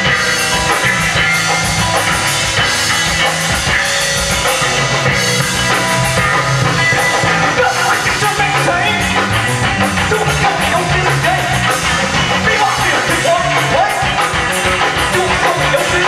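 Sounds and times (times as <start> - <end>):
bass guitar: 0.0 - 16.0
drum kit beat: 0.0 - 16.0
electric guitar: 0.0 - 16.0.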